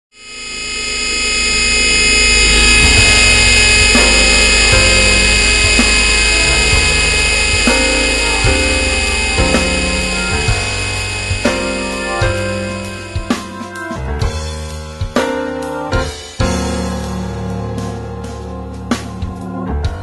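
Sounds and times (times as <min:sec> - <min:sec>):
sustained high tones: 0:00.1 - 0:14.2
electronic music: 0:00.1 - 0:19.7
bass line: 0:00.2 - 0:20.0.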